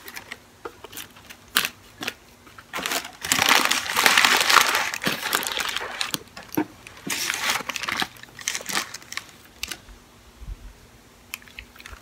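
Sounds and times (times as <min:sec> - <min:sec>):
paper wrapper crinkling: 0:00.0 - 0:09.8.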